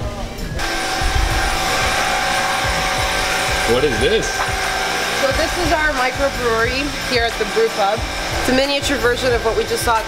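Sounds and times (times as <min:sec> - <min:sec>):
equipment humming and whirring: 0:00.0 - 0:10.0
high-pitched whine: 0:00.4 - 0:05.6.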